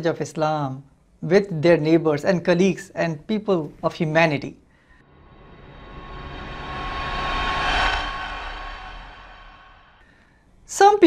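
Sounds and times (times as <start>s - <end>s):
whoosh transition effect: 5.0s - 10.0s.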